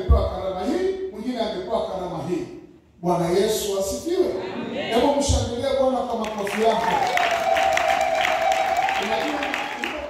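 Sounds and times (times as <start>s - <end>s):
congregation clapping and cheering: 5.9s - 10.0s.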